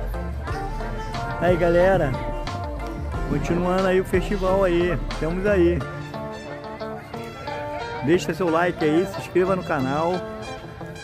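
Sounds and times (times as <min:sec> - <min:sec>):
music with held notes: 0:00.0 - 0:11.0.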